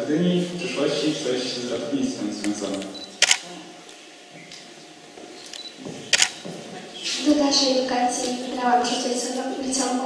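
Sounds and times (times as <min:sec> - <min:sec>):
camera shutter click: 0:02.7 - 0:03.4, 0:05.5 - 0:06.4.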